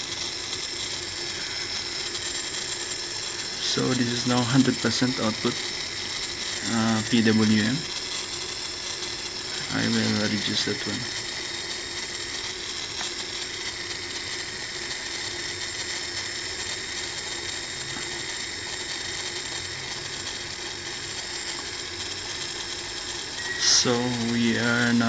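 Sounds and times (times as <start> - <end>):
small motor whirring: 0.0 - 25.0
thin high-pitched tones: 23.4 - 25.0.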